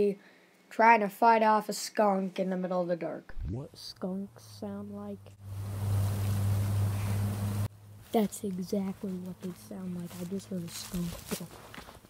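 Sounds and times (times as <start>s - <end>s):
loud steady low hum: 3.4s - 8.1s
hiss: 5.4s - 7.7s.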